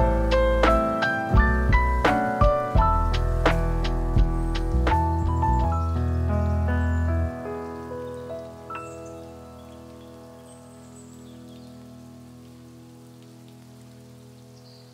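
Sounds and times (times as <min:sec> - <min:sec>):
piano notes and held chord: 0:00.0 - 0:14.9
soft rain-like hiss: 0:00.0 - 0:14.9.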